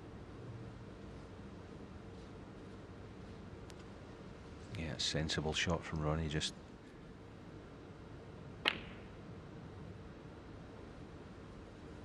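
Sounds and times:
snooker balls clicking: 8.6s - 9.1s.

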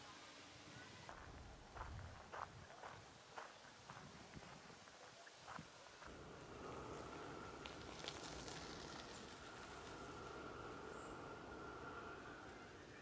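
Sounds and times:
footsteps on gravel: 1.1s - 6.1s
faint high whine: 6.0s - 13.0s.

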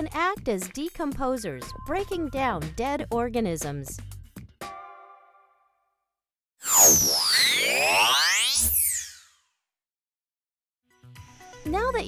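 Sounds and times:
synthesized whistle-like glides: 6.6s - 9.4s.

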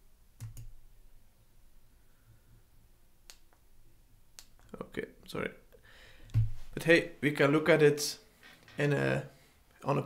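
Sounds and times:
man speaking: 6.7s - 10.0s.

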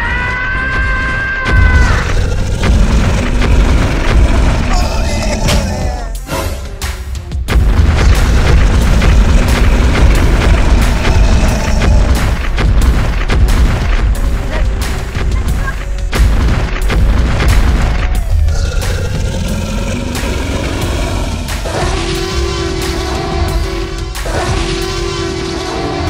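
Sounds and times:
dramatic film music: 0.0s - 26.0s
heavy booming thuds: 7.4s - 21.8s.

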